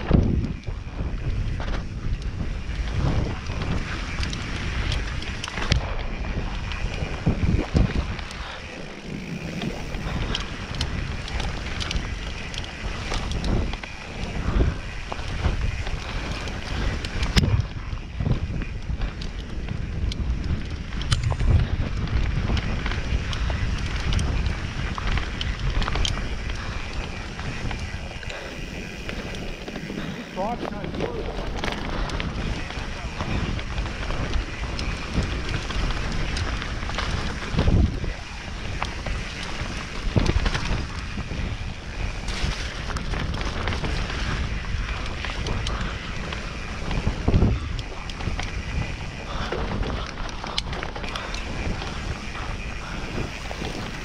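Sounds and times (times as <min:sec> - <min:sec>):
tyre noise on dirt: 0:00.0 - 0:54.0
wind rumble on microphone: 0:00.0 - 0:54.0.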